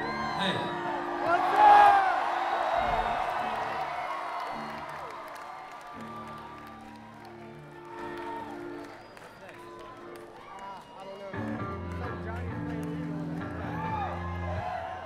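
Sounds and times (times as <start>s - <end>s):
crowd cheering and clapping: 0.0s - 15.0s.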